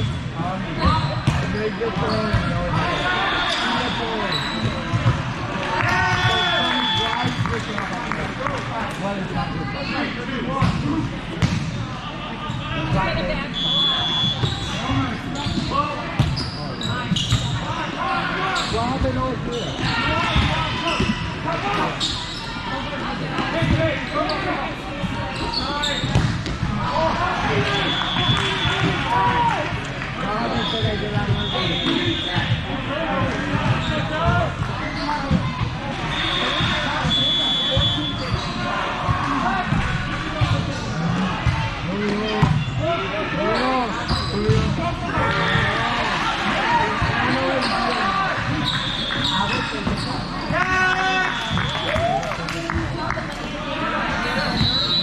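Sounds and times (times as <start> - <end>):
many voices calling and chattering: 0.0 - 55.0
volleyballs hit and bouncing: 26.0 - 26.8.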